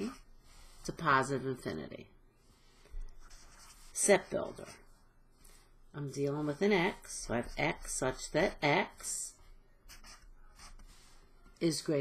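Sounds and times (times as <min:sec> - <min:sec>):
marker writing on paper: 0:00.0 - 0:00.8, 0:03.2 - 0:05.0, 0:06.3 - 0:11.3.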